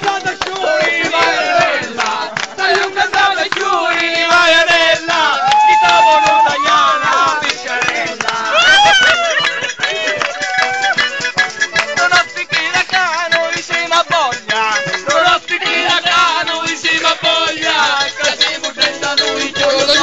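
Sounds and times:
button accordion folk dance tune: 0.0 - 20.0
percussion: 0.0 - 20.0.

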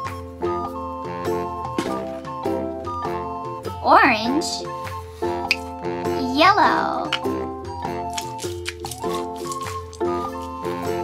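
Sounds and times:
children's background music: 0.0 - 11.0
squishy stress ball squelching: 7.9 - 11.0.

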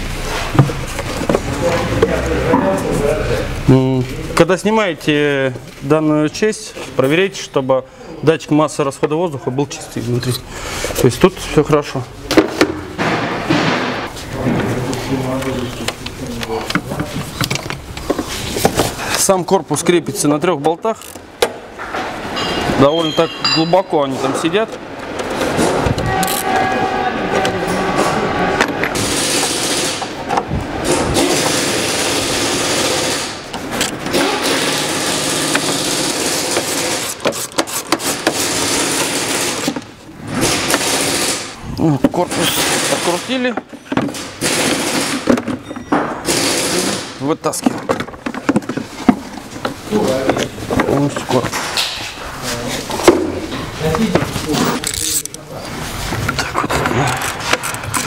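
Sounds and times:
plastic parts knocking and clicking: 15.4 - 19.3, 42.0 - 52.0, 56.2 - 58.0
scraping rustling noise: 18.1 - 19.1, 48.5 - 58.0
tool mechanical noise: 27.4 - 52.0, 54.1 - 58.0.

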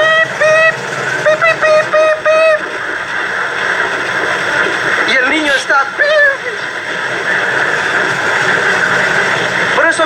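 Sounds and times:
broadcast hiss: 0.0 - 10.0.

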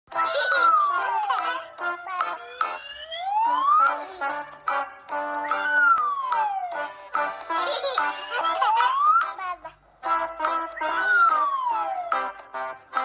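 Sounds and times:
background music held notes: 0.1 - 13.0
sliding whistle-like tone: 5.4 - 6.8, 10.7 - 12.2.

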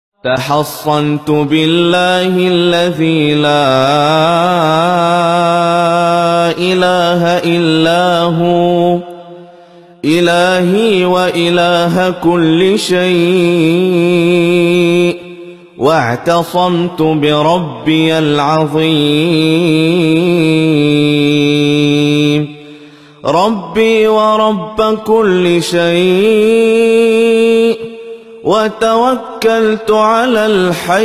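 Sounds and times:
man chanting: 0.2 - 31.0.

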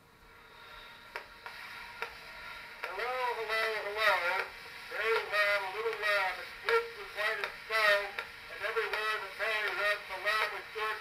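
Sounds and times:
phonograph surface hiss: 0.0 - 11.0.

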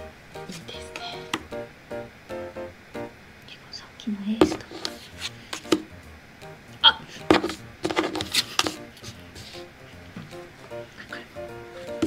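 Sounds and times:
playing cards tapping on wooden table: 4.4 - 5.9, 7.2 - 8.8.

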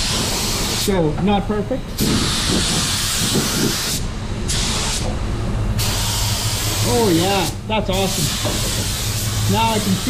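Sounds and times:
spray gun air hiss: 0.0 - 0.9, 2.0 - 5.1, 5.8 - 10.0
fans humming: 0.0 - 10.0.

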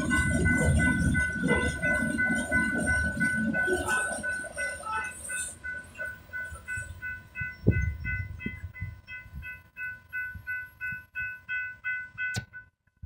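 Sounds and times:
crossing warning bell ringing: 0.0 - 13.0
rumble of rail cars rolling: 0.0 - 13.0.

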